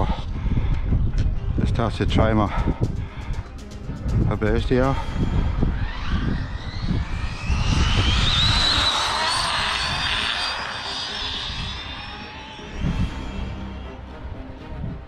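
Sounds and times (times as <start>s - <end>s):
electric motors whining: 5.0s - 14.8s.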